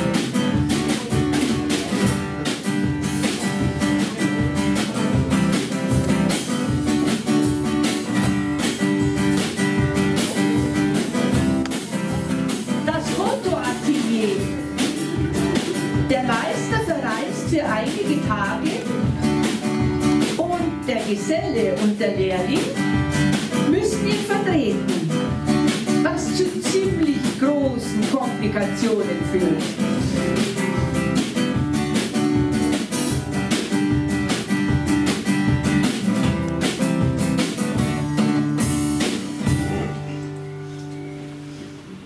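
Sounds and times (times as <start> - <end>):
drum kit beat: 0.0 - 40.2
acoustic guitar melody: 0.0 - 42.0.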